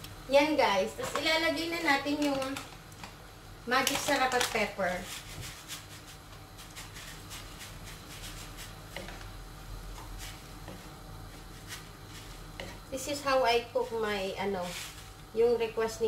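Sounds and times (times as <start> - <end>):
wooden spoon scraping a wok: 4.9 - 9.3, 10.0 - 12.9, 13.7 - 15.2.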